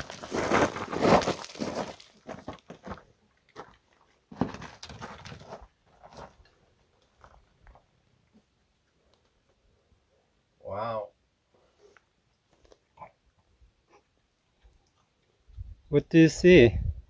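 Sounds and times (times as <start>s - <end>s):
footsteps on gravel: 0.0s - 6.5s.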